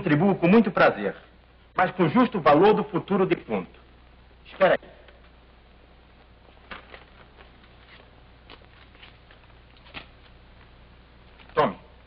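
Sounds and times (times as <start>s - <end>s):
film soundtrack hiss and hum: 0.0s - 12.0s.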